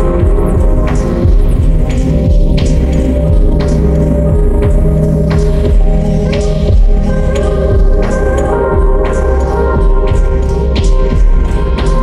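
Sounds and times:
dense low drone and hum: 0:00.0 - 0:12.0
throbbing bass thuds sliding down: 0:00.0 - 0:12.0.

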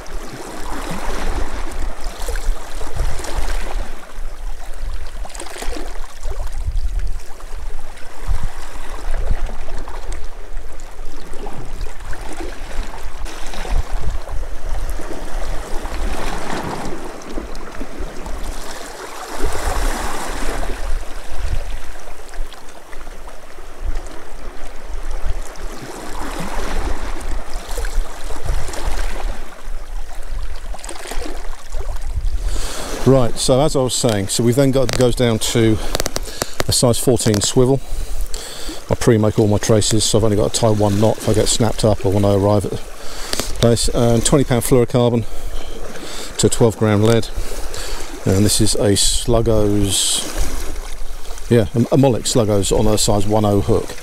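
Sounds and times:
sea water lapping against rocks: 0:00.0 - 0:54.0.

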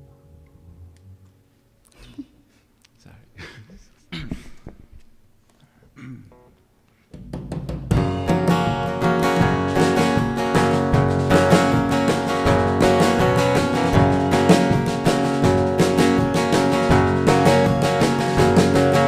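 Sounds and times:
drum kit steady beat: 0:07.2 - 0:19.0
strummed acoustic guitar: 0:07.9 - 0:19.0.

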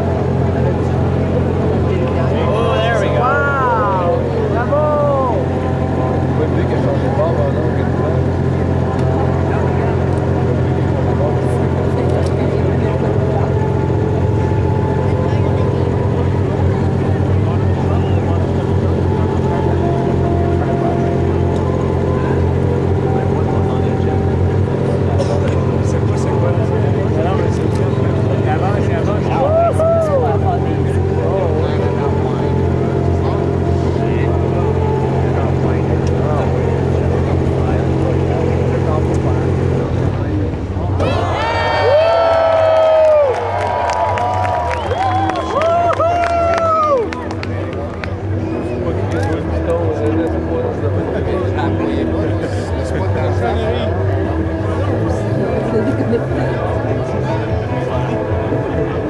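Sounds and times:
faint voices: 0:00.0 - 0:59.0
low mechanical drone: 0:00.0 - 0:59.0.

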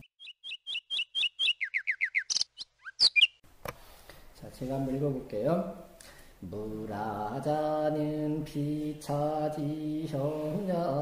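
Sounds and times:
bird chirping and calling: 0:00.0 - 0:03.4.

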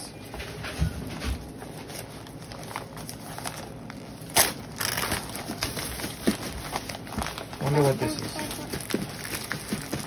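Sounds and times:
newspaper crinkling and rustling: 0:00.9 - 0:10.0
loud sharp paper crackle: 0:01.4 - 0:10.0.

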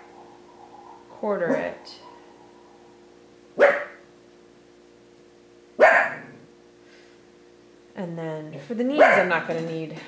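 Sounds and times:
faint steady hum: 0:00.0 - 0:10.0
dog barking: 0:03.6 - 0:04.1, 0:05.8 - 0:06.4, 0:09.0 - 0:09.3.

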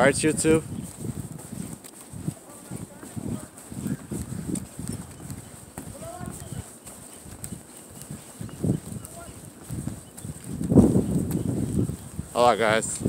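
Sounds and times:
footsteps on wooden boardwalk: 0:00.0 - 0:13.0.

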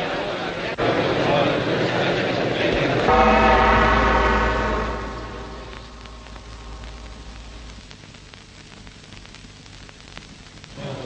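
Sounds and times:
voices: 0:00.0 - 0:07.7
large gong struck: 0:03.1 - 0:07.9.

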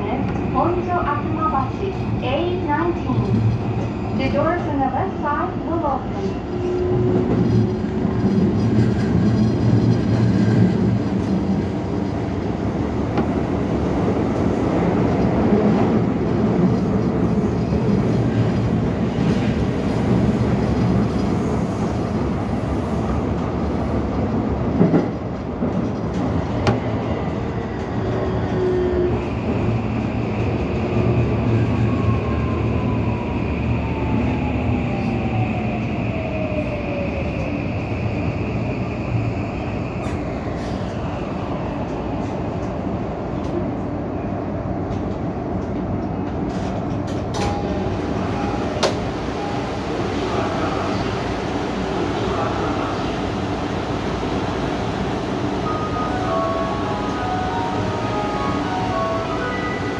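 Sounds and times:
subway train rumbling in tunnel: 0:00.0 - 0:59.9
steady high tone: 0:55.6 - 0:59.9.

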